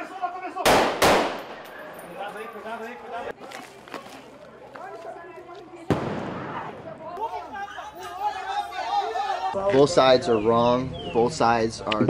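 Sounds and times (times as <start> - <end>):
gunshot with echo: 0.6 - 1.8.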